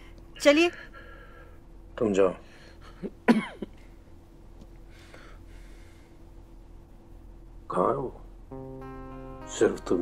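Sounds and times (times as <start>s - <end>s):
old man coughing: 3.2s - 3.7s
man clearing his throat: 3.3s - 3.6s.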